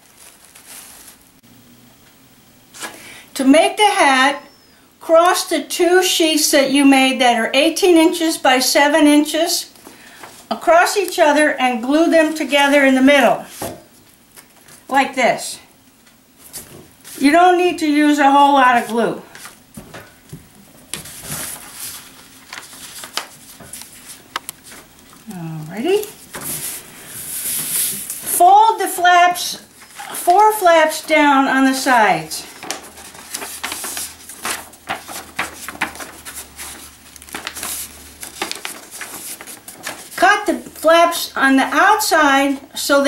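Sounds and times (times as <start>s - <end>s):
paper rustling and sliding: 0.0s - 1.3s, 20.9s - 25.0s, 26.2s - 28.4s, 29.8s - 31.0s, 32.4s - 40.3s.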